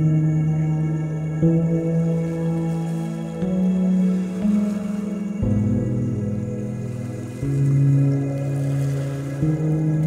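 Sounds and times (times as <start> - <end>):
slow ambient music: 0.0 - 10.0.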